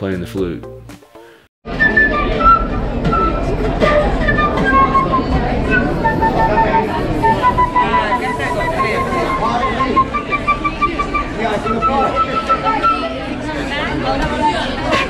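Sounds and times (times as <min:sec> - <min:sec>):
crowd chatter: 0:01.7 - 0:15.0
wooden flute melody: 0:01.7 - 0:15.0
beatbox sounds: 0:01.8 - 0:13.1, 0:14.2 - 0:15.0.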